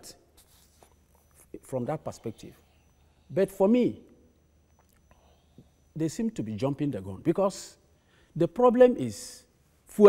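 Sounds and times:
low steady hum: 0.0 - 10.0
man speaking: 1.4 - 2.7, 3.3 - 4.1, 5.9 - 10.0.

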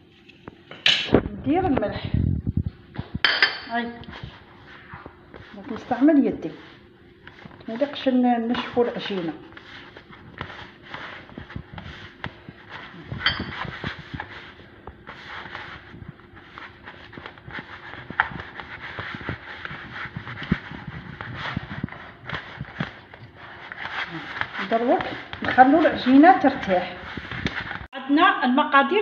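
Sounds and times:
hand kneading dough in bowl: 1.5 - 27.9.

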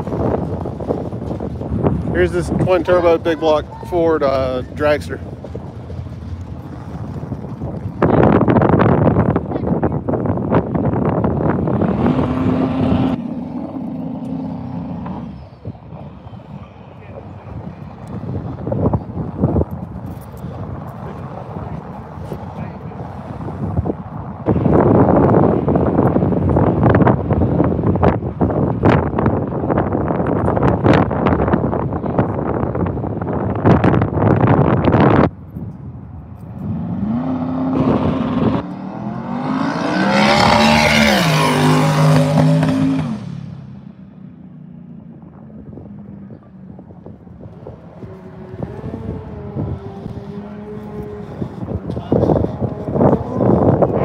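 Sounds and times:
dragster engine roaring: 0.0 - 54.0.

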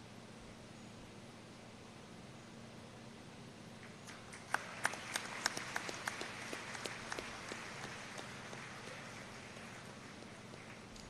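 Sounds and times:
light applause: 3.8 - 11.0.

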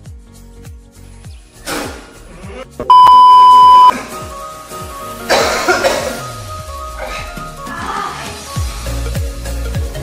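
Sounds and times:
background music with bass line: 0.0 - 10.0
loud bleep tone: 2.8 - 3.9.

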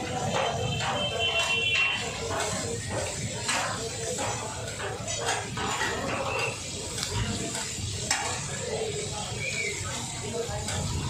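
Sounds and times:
fish sizzling in oil: 0.0 - 11.0
spatula scraping a griddle: 0.0 - 11.0.

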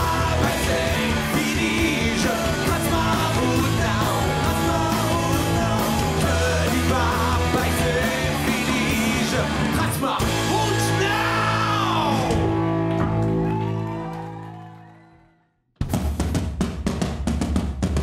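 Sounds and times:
person singing: 0.0 - 12.6
live rock band playing: 0.0 - 14.0.

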